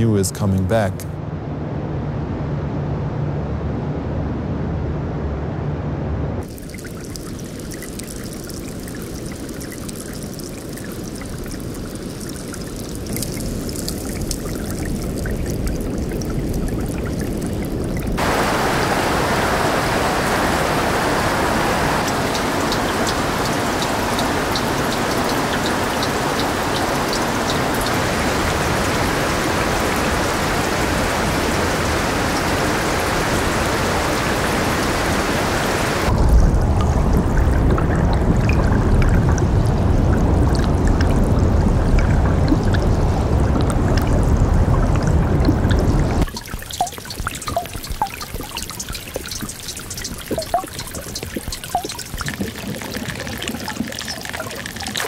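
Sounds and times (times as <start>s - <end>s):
fine clicking drips: 6.4s - 18.3s, 21.2s - 55.0s
meltwater trickling over ice: 6.4s - 18.3s, 19.0s - 55.0s.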